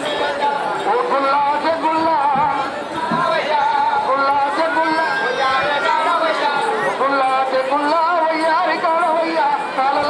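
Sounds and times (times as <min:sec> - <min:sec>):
several voices: 0:00.0 - 0:10.0.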